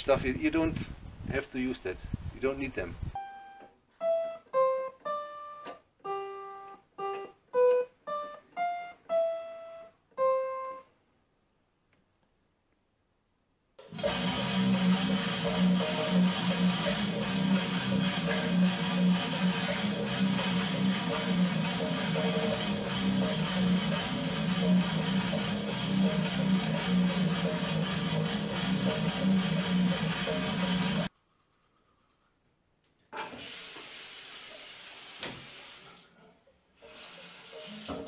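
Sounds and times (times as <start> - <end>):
distorted electric guitar riff: 13.9 - 31.1.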